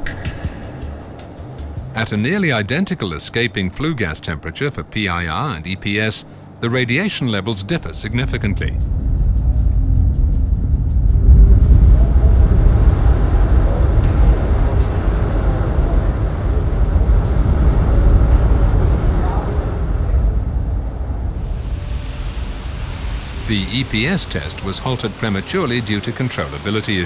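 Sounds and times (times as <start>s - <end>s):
faint fire crackles: 4.6s - 27.0s
low rumble of flames: 7.7s - 27.0s.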